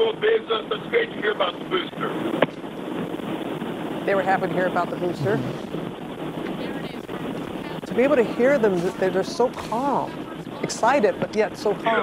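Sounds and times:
steady rushing noise: 0:00.1 - 0:12.0.

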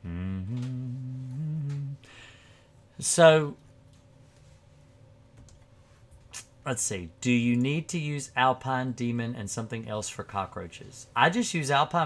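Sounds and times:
man humming low notes: 0:00.0 - 0:02.2.

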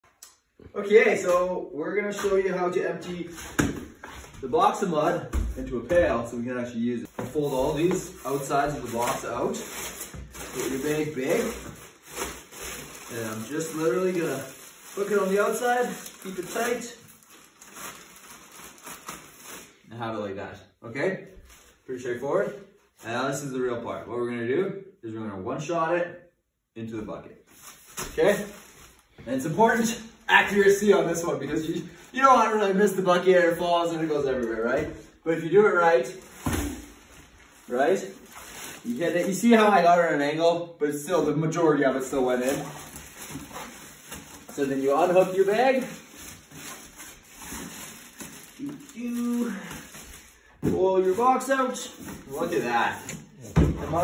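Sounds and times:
plastic bag rustling: 0:07.0 - 0:19.9, 0:27.5 - 0:35.1, 0:35.7 - 0:40.1, 0:41.0 - 0:53.2.

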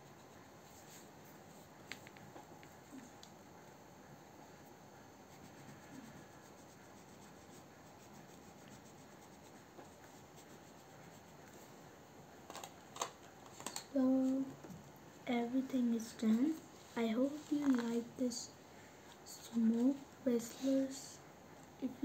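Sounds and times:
crayon scratching on paper: 0:05.3 - 0:11.7.

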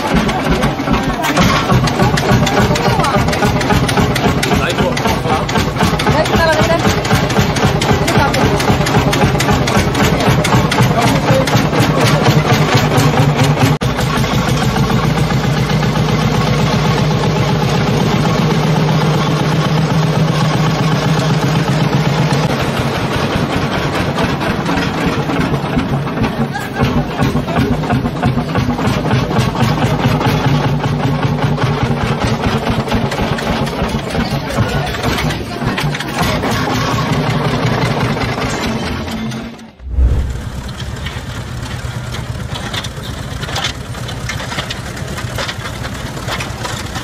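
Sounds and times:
tractor engine chugging: 0:00.0 - 0:47.0.

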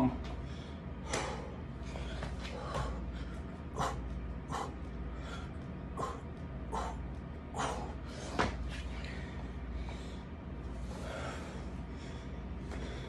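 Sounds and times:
steady low hum: 0:00.0 - 0:13.0
man breathing hard and grunting: 0:00.3 - 0:13.0.

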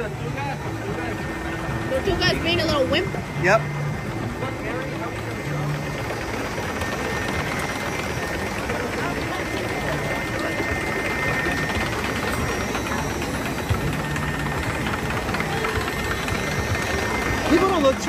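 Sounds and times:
faint steady whine: 0:00.0 - 0:18.0
moving water in a channel: 0:00.0 - 0:18.0
ride machinery running: 0:00.0 - 0:18.0.

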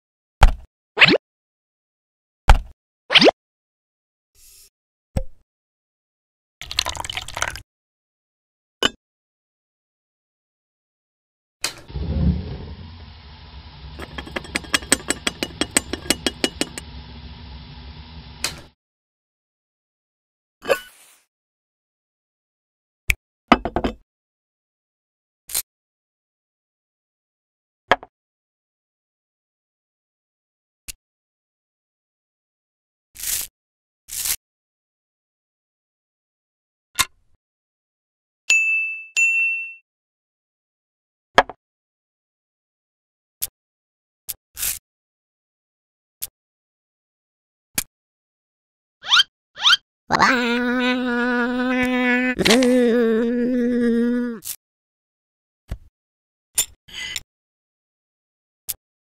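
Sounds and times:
gas flame rumble and hiss: 0:11.9 - 0:18.8.

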